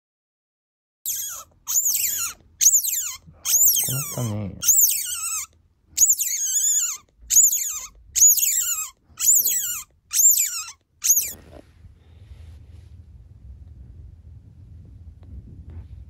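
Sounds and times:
otter pup squealing: 0:01.1 - 0:11.4.

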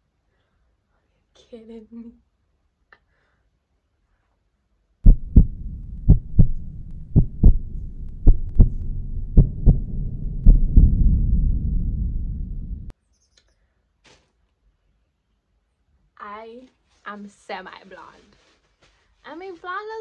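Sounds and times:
heartbeat double thumps: 0:05.1 - 0:12.9
low rumble: 0:05.1 - 0:12.9.

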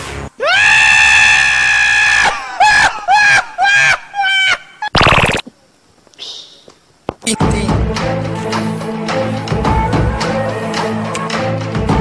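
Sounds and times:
background music: 0:07.4 - 0:12.0.

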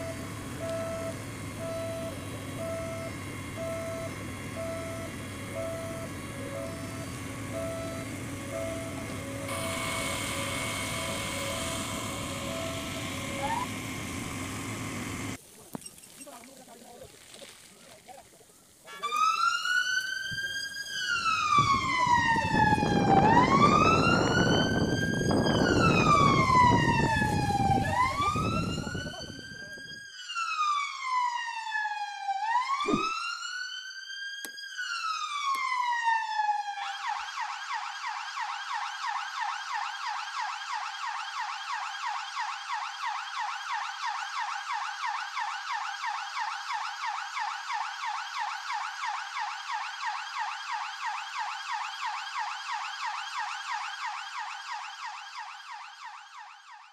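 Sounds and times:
fire engine siren wailing: 0:00.0 - 0:15.4, 0:17.1 - 0:56.9.

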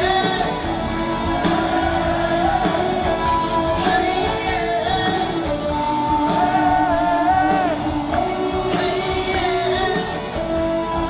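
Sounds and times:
bass guitar: 0:00.0 - 0:11.0
drums: 0:00.0 - 0:11.0
electric guitar melody: 0:00.0 - 0:11.0.

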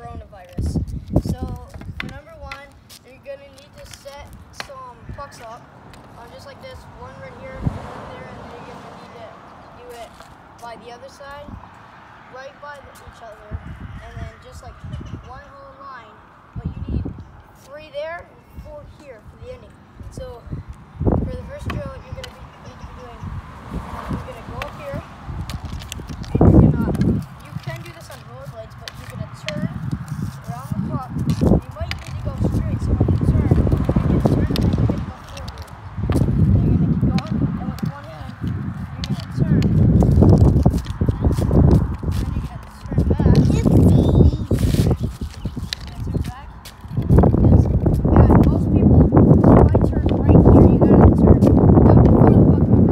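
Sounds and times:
hockey stick clicking on asphalt: 0:01.5 - 0:04.8, 0:21.6 - 0:22.5, 0:24.6 - 0:24.8, 0:25.4 - 0:43.7, 0:44.6 - 0:48.6.

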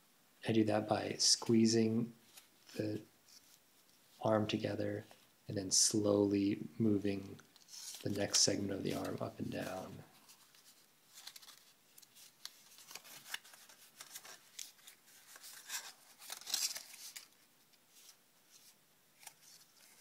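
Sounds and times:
paper rustling and crinkling: 0:07.4 - 0:20.0.

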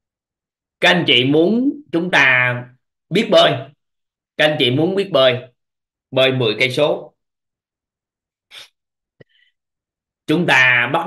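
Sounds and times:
person's sharp breath: 0:08.5 - 0:09.6.

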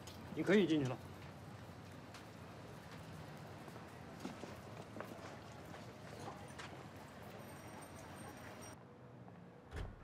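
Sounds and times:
faint street noise: 0:00.0 - 0:10.0.

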